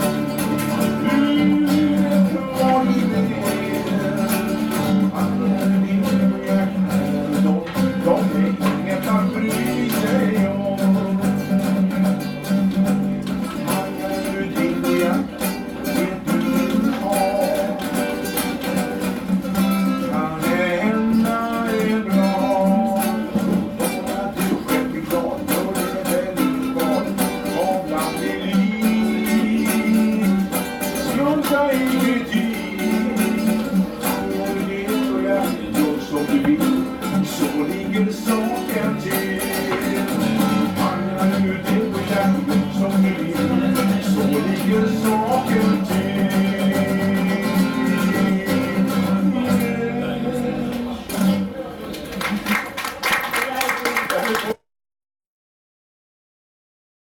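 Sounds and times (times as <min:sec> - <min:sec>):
man singing: 0:00.0 - 0:51.4
classical guitar: 0:00.0 - 0:52.4.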